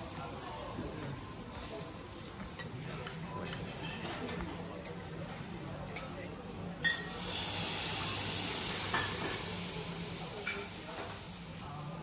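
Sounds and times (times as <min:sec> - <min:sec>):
griddle hissing and sizzling: 0:07.0 - 0:12.0.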